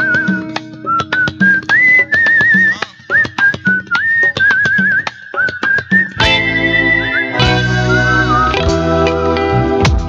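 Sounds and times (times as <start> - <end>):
hand drums: 0.0 - 6.8, 9.8 - 10.0
whistle-like lead melody: 0.0 - 10.0.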